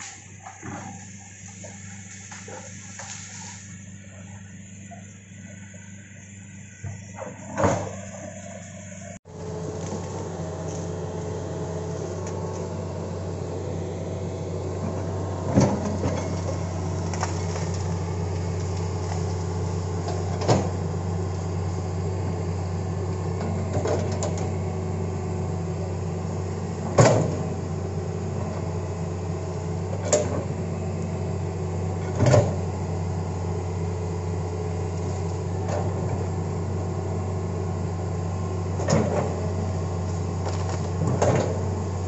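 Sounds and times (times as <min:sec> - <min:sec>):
excavator diesel engine running: 0:00.0 - 0:42.0.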